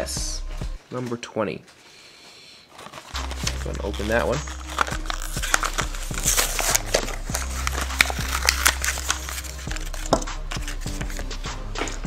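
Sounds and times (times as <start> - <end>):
background music with bass: 0.0 - 0.8, 3.2 - 12.0
blister package tearing open: 2.7 - 12.0.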